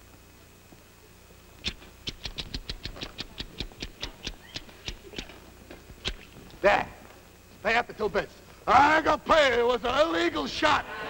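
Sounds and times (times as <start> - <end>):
mouth clicks: 1.6 - 5.4, 6.0 - 6.5.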